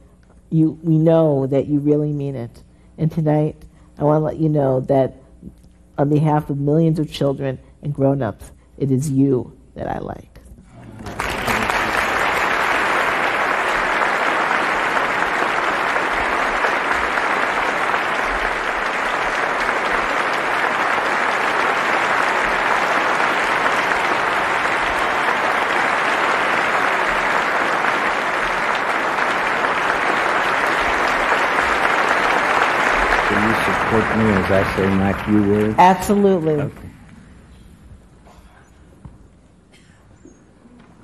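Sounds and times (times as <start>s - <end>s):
audience applauding: 10.8s - 36.6s.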